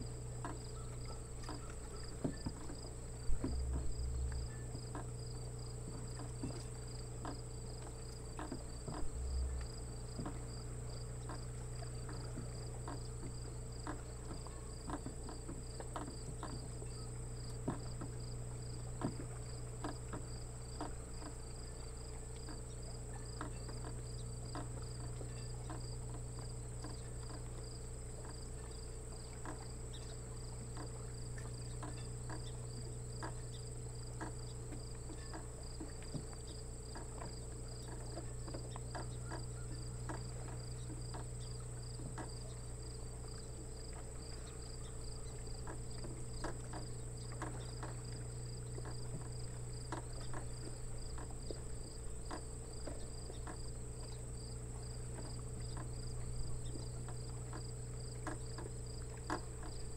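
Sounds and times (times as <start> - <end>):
insect pulsed chirp: 0.0 - 59.9
low steady hum: 0.0 - 59.9
soft ticks: 11.2 - 16.7, 22.3 - 22.7, 23.3 - 32.6, 33.2 - 42.6, 43.9 - 54.2, 55.1 - 56.0, 56.6 - 59.9.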